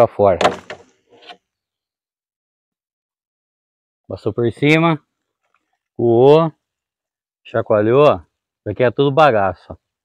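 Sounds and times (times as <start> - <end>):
faint rubbing or scraping: 0.7 - 1.4.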